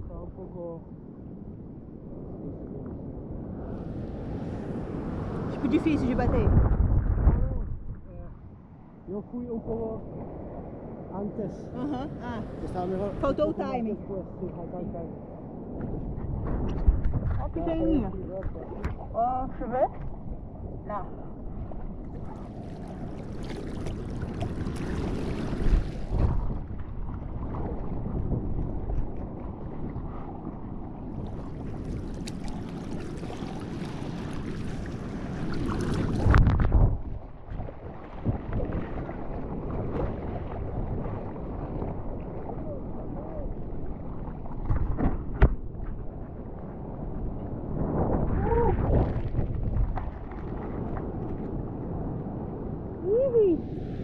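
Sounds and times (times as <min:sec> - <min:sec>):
wind buffeting microphone: 0:00.0 - 0:54.0
water rushing and splashing: 0:08.8 - 0:54.0.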